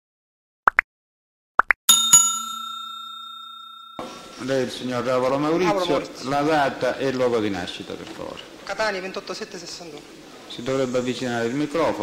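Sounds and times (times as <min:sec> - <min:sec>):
notification bell ringing: 0:01.9 - 0:04.8.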